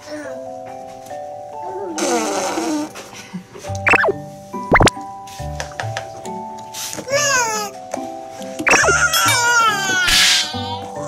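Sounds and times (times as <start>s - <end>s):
baby blowing a raspberry: 2.0s - 3.0s
cheerful background music: 2.7s - 11.0s.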